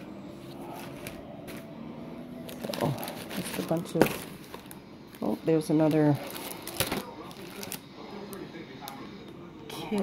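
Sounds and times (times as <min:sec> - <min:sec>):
plastic packages rustling: 0:02.4 - 0:09.0.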